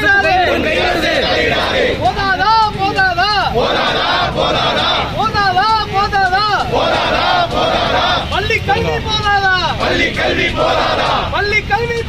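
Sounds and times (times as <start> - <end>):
crowd chanting slogans: 0.0 - 12.0
leader shouting: 2.0 - 3.6.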